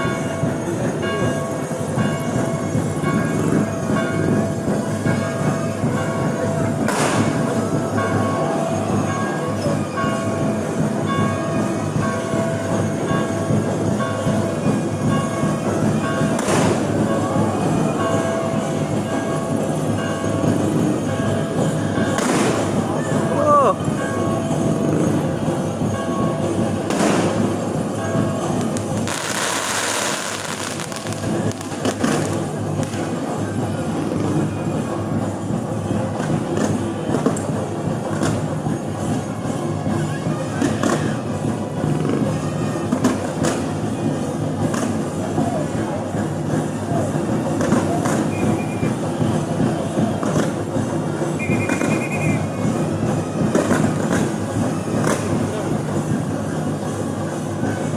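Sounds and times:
crowd voices: 0.0s - 57.9s
music: 0.0s - 57.9s
fireworks bursting: 16.1s - 17.2s, 22.1s - 22.9s, 26.8s - 27.8s, 28.6s - 33.3s
fireworks hissing crackle: 28.6s - 33.2s.

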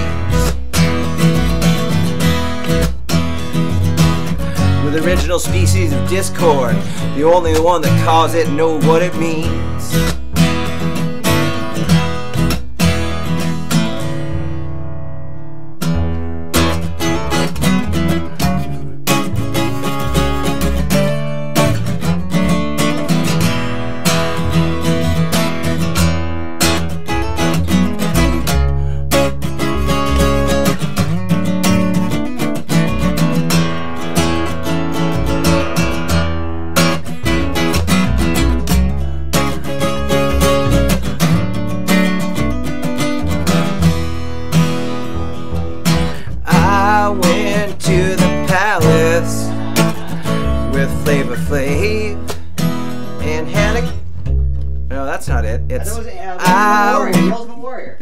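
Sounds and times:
double bass plucked: 0.0s - 57.5s
acoustic guitar strumming: 0.0s - 58.0s.

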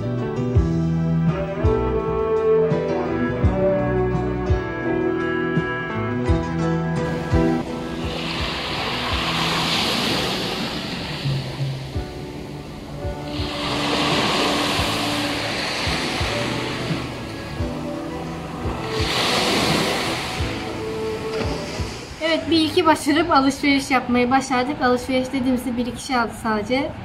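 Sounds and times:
background music: 0.0s - 27.0s
waves breaking on shore: 7.0s - 23.0s.

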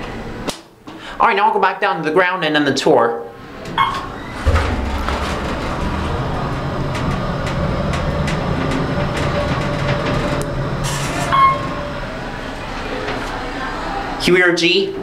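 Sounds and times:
elevator rumble and hum: 3.3s - 14.2s
brief elevator tone: 10.5s - 12.1s.

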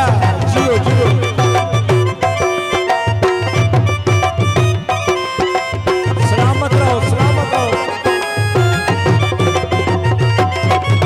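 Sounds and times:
fast drum beat: 5.9s - 8.2s.

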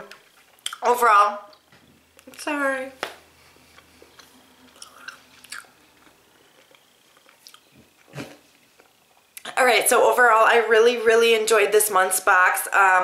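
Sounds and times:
person chewing: 3.3s - 9.4s
wet mouth clicks: 3.7s - 9.5s.

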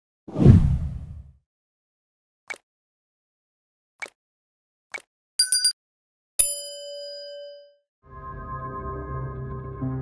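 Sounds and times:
whoosh with deep boom: 0.3s - 1.3s.

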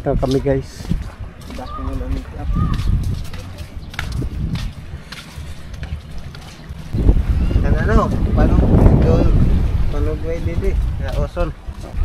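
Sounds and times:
voices talking: 0.0s - 12.0s
wind buffeting microphone: 0.0s - 12.0s.

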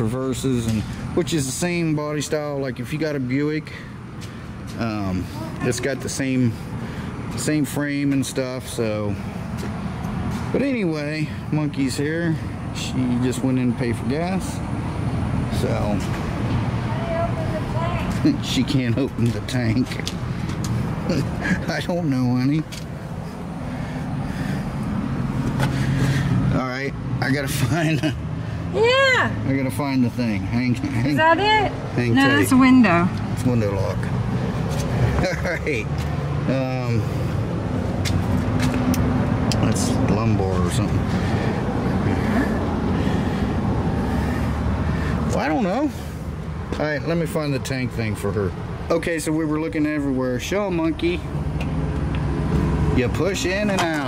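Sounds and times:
vehicle engine humming: 0.0s - 54.0s.

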